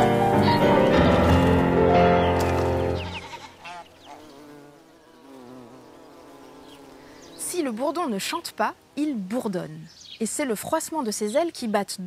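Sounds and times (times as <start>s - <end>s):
piano chord: 0.0s - 3.2s
bumblebee buzzing: 0.0s - 9.7s.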